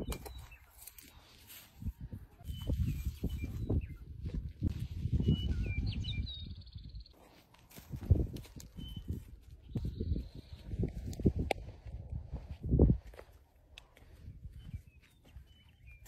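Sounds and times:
small birds chirping: 0:00.0 - 0:01.4, 0:02.4 - 0:07.3, 0:08.6 - 0:11.3, 0:13.8 - 0:16.0.

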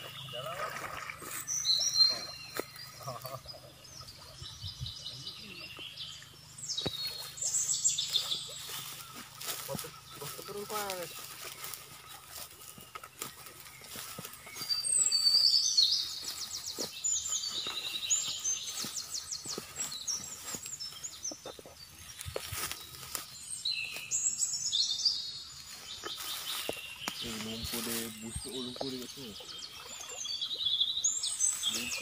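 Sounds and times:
bird chirping and trilling: 0:00.0 - 0:32.0.

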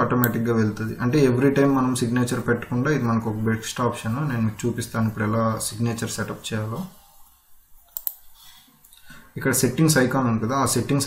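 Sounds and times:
faint room hiss: 0:00.0 - 0:11.0
computer mouse click: 0:07.9 - 0:08.2.

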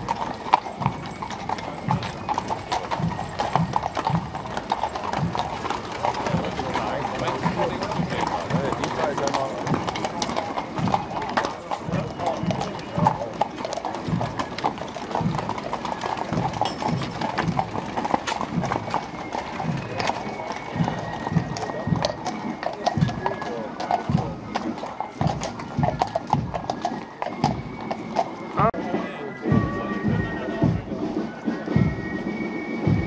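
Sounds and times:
people talking: 0:00.0 - 0:26.2, 0:28.6 - 0:32.1
faint band music: 0:00.0 - 0:33.0
horse hooves clip-clopping on asphalt: 0:00.0 - 0:33.0.

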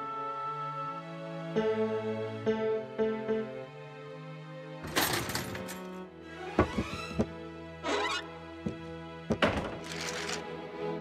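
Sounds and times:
slow piano music with held chords: 0:01.5 - 0:04.0.

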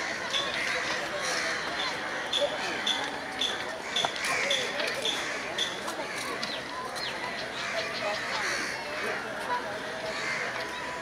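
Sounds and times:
voices of people: 0:00.0 - 0:11.0.

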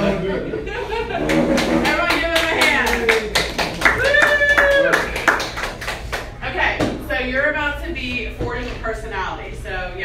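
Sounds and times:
audience clapping: 0:01.2 - 0:06.4
person cheering: 0:02.9 - 0:05.3.

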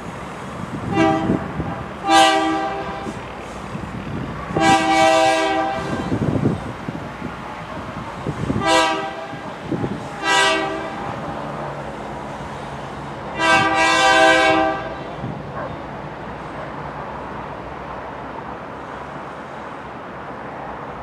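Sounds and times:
locomotive rumbling on rails: 0:00.0 - 0:21.0
locomotive air horn blasts: 0:00.9 - 0:03.2, 0:04.5 - 0:06.3, 0:08.5 - 0:09.4, 0:10.0 - 0:11.2, 0:13.3 - 0:15.2.

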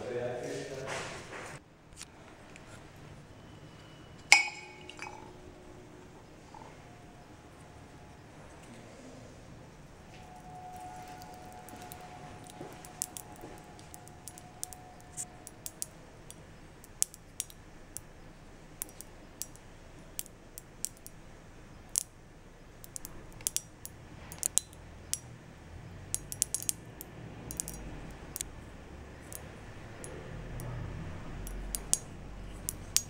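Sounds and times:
desiccant beads popping: 0:10.1 - 0:25.4, 0:26.0 - 0:33.0.

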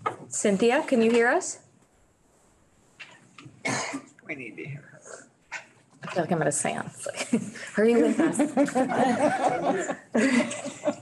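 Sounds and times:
person coughing: 0:03.6 - 0:04.1.

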